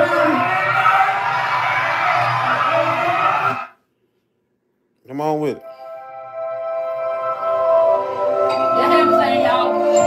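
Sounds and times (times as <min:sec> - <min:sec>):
crowd cheering and yelling: 0:00.0 - 0:03.8.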